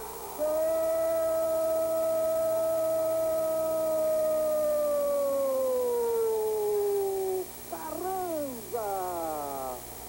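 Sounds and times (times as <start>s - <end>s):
commentator shouting goal cry: 7.0s - 9.8s.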